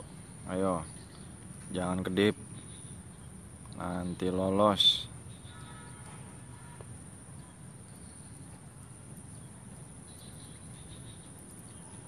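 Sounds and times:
faint calls: 0.0 - 8.6.

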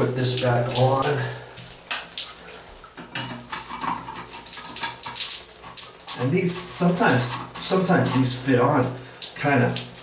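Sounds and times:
water splashing onto tile: 0.0 - 10.0.

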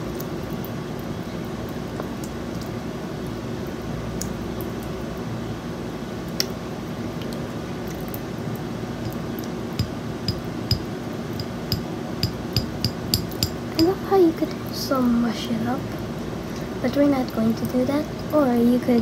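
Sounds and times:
electric fan humming: 0.0 - 19.0.

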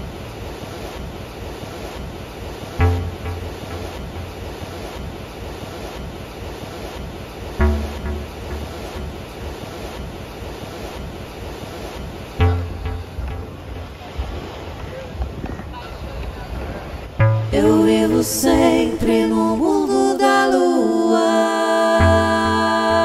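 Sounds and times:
ocean surf washing onto beach: 0.0 - 23.0
low instrumental chord: 2.8 - 4.4, 7.6 - 9.2, 12.4 - 14.0, 17.2 - 17.7.

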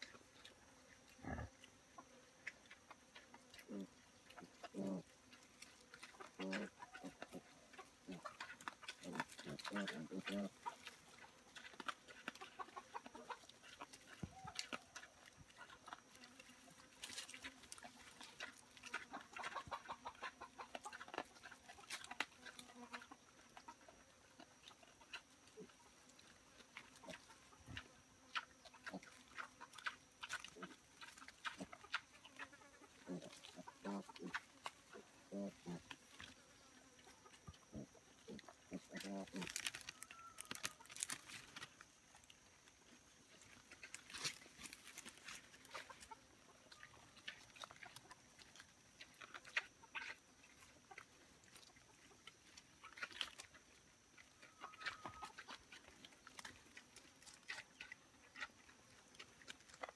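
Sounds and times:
pigs grunting softly: 0.0 - 59.9
rustling in dry leaves: 38.3 - 41.8, 43.3 - 46.0.

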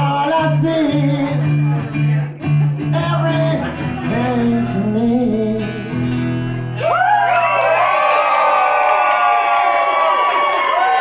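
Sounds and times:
person singing: 0.0 - 6.0
guests cheering and whooping: 6.8 - 11.0.

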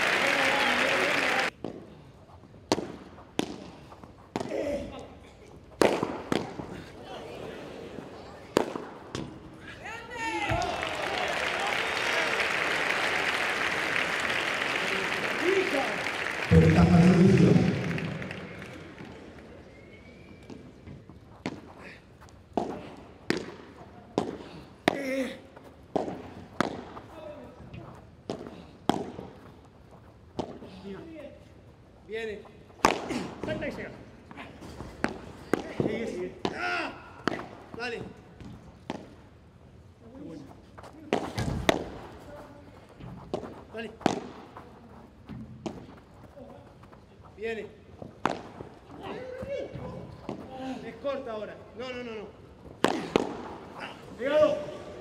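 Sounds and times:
applause: 0.0 - 1.5, 10.6 - 19.5
loud voice: 16.5 - 18.6
padel ball struck by paddles: 22.6 - 23.6, 25.9 - 26.9, 44.0 - 44.4, 48.2 - 48.6, 52.8 - 53.5.

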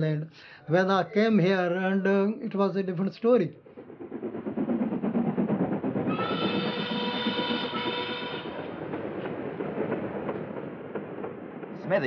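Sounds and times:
train clattering on track: 0.8 - 12.0
train horn: 6.1 - 8.8.

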